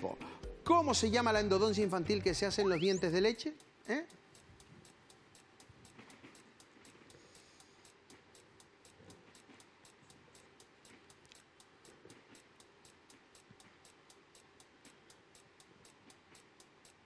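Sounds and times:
quick high countdown ticks: 0.0s - 17.0s.

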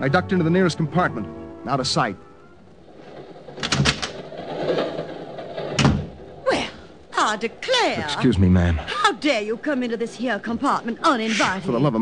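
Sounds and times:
low noise: 0.0s - 12.0s.

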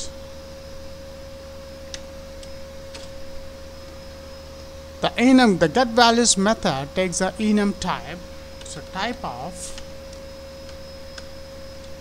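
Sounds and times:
electrical hum: 0.0s - 12.0s
faint constant tone: 0.0s - 12.0s.

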